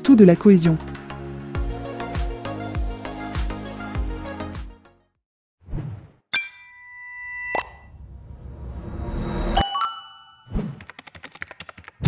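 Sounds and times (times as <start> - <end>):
ringing chime: 6.4 - 7.9, 9.6 - 10.5.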